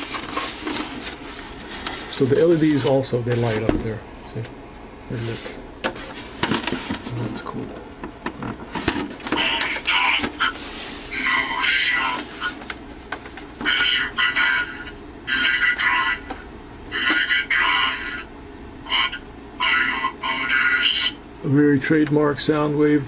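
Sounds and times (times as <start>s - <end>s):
tinny robotic voice from speaker: 9.4s - 12.5s, 13.6s - 16.3s, 16.9s - 21.2s.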